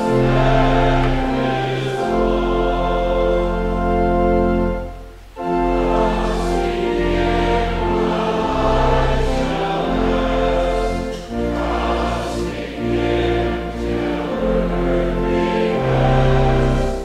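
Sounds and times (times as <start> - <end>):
choir singing a hymn: 0.0 - 17.0
deep accompaniment: 0.0 - 17.0.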